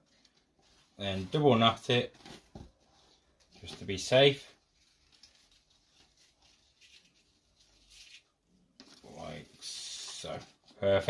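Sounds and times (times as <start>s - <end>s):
ribbon and paper rustling: 0.0s - 9.3s.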